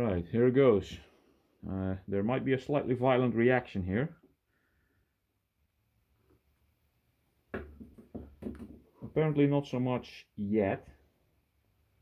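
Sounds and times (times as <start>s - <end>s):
irregular knocks and rustling: 7.5s - 9.2s.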